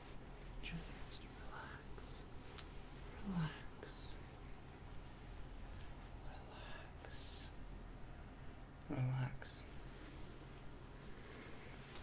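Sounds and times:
close-up whispering: 0.5 - 4.7, 5.7 - 7.7, 8.8 - 10.2.

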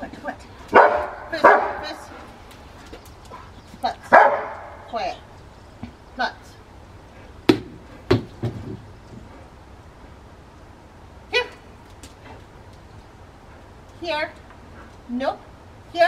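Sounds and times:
sharp knocks: 7.5 - 8.9.

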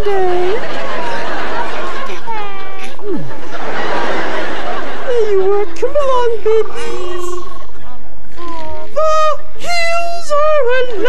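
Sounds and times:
laughter: 0.5 - 5.9.

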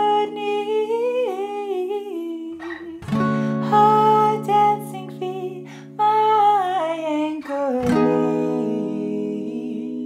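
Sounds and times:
woman singing wordlessly: 0.0 - 10.0
acoustic guitar chord ringing: 2.7 - 6.9, 7.5 - 10.0.

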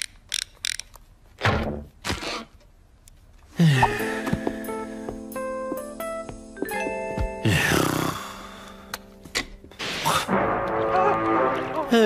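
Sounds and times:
cartoon music: 10.1 - 12.0.

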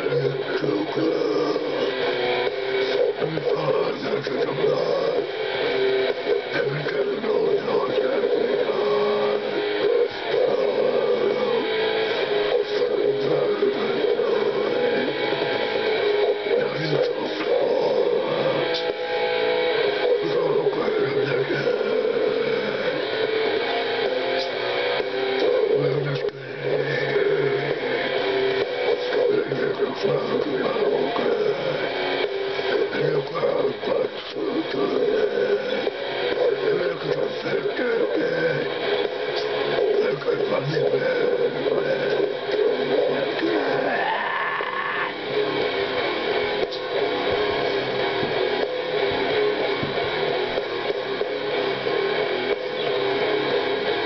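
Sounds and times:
death metal song from speaker: 0.0 - 54.0
man growling vocals: 43.1 - 45.2.

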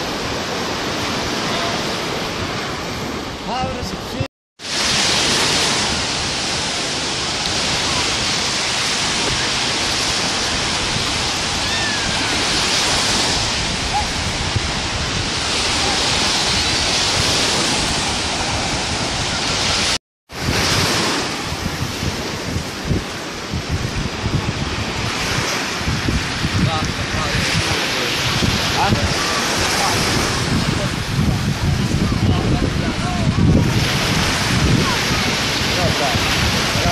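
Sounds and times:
waves washing up sandy shore: 0.0 - 36.9
wind buffeting microphone: 0.0 - 36.9.

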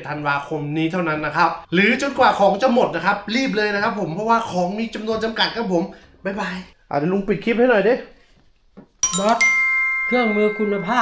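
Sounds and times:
bright ringing chime: 9.0 - 11.0.

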